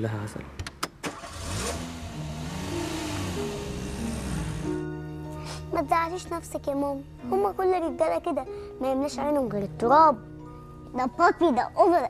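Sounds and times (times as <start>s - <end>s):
vehicle engine revving: 1.1s - 4.9s
steady music tones: 1.5s - 11.6s.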